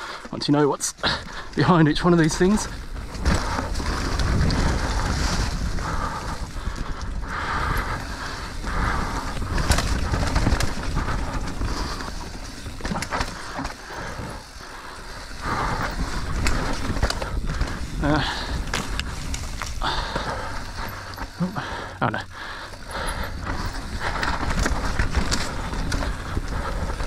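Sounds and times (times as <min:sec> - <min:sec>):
bike tyres on dirt and leaves: 0:00.0 - 0:27.0
bike clacking over bumps: 0:01.1 - 0:27.0
wind rumble on microphone: 0:01.3 - 0:14.4, 0:15.0 - 0:21.8, 0:22.9 - 0:27.0.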